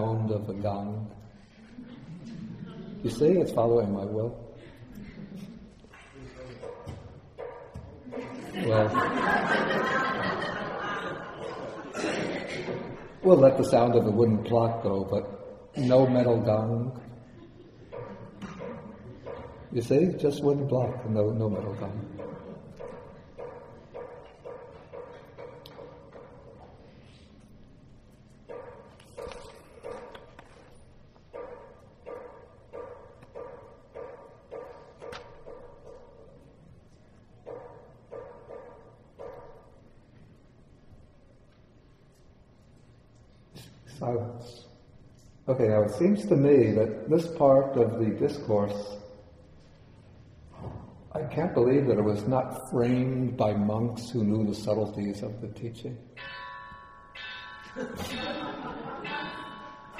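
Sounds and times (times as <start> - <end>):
metal gong ringing: 56.2 - 59.9.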